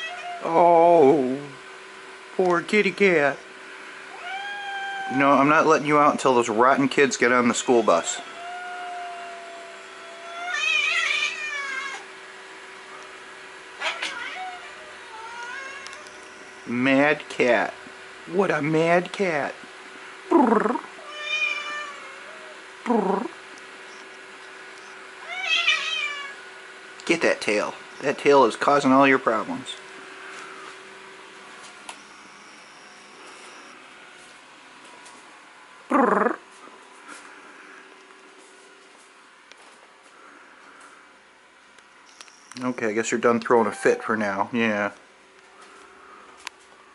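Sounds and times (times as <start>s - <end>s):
cat yowling: 0.0s - 0.6s, 4.1s - 5.4s, 7.2s - 12.1s, 13.8s - 16.5s, 20.9s - 22.6s, 25.2s - 26.4s.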